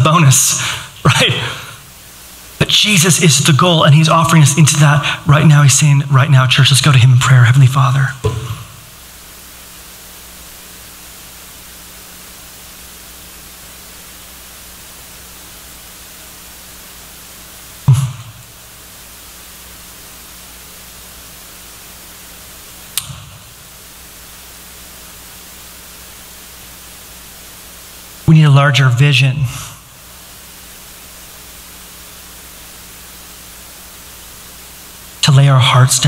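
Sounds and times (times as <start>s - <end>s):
faint low hum: 0.0s - 36.0s
sound system hiss: 0.0s - 36.0s
sharp click: 23.0s - 23.3s.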